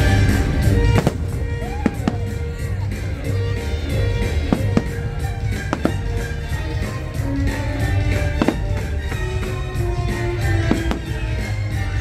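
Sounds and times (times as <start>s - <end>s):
fireworks bangs: 0.0s - 12.0s
show music: 0.0s - 12.0s.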